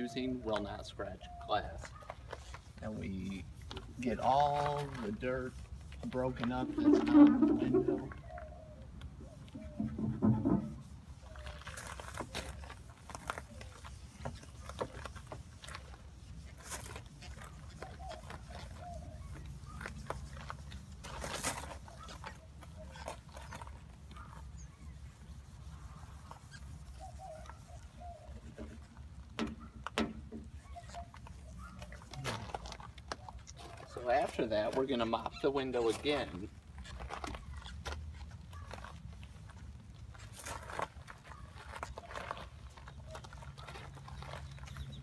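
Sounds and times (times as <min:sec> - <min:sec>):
scouring pad scrubbing glass: 0:02.7 - 0:08.3, 0:09.4 - 0:29.0.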